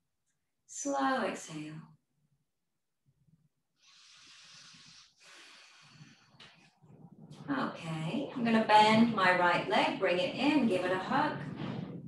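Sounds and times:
soft hissy breathing: 0:03.8 - 0:06.8.

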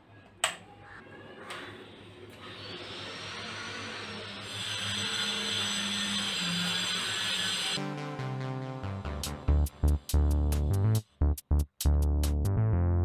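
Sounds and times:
background music: 0:07.8 - 0:13.0.

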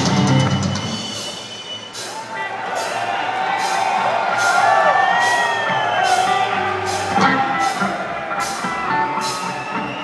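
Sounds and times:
audience cheering and whooping: 0:01.8 - 0:10.0
live blues-rock band: 0:03.5 - 0:10.0.

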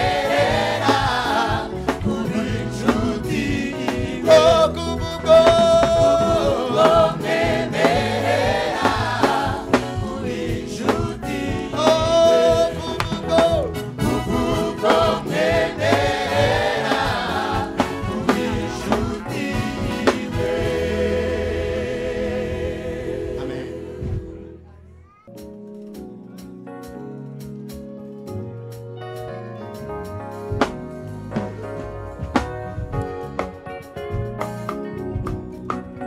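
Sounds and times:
live band with bass and drums: 0:00.0 - 0:21.2, 0:24.1 - 0:36.0
choir singing gospel: 0:00.0 - 0:24.7.

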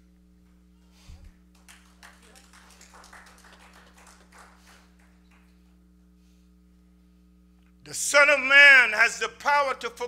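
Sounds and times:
low electrical hum: 0:00.0 - 0:10.0
faint scattered clapping: 0:01.3 - 0:05.7.

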